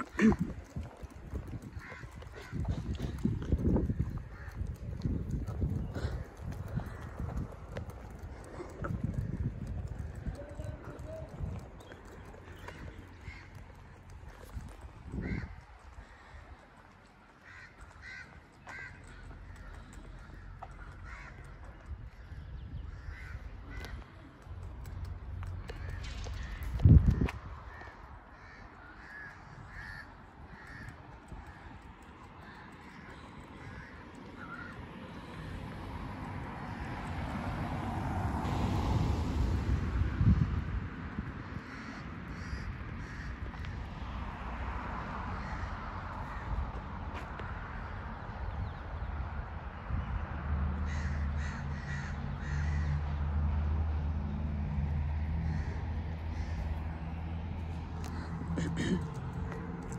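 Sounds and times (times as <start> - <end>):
wind rumble on microphone: 0.0 - 17.1, 18.0 - 34.2, 34.8 - 52.8
birds calling: 0.0 - 35.6.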